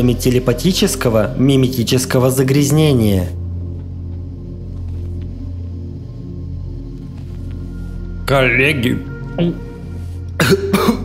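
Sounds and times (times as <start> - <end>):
low drone of background music: 0.0 - 11.0
man clearing his throat: 10.4 - 11.0
man coughing: 10.4 - 11.0.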